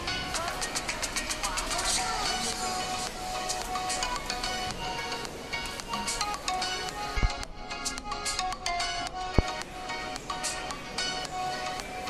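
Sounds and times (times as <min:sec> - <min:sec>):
music with fast ticking beat: 0:00.0 - 0:12.0.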